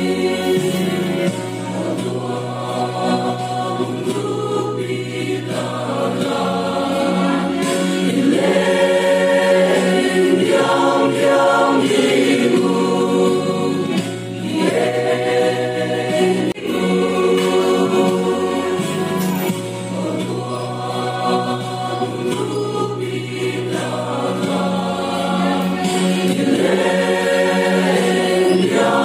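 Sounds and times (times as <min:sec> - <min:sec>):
mixed choir singing in harmony: 0:00.0 - 0:29.0.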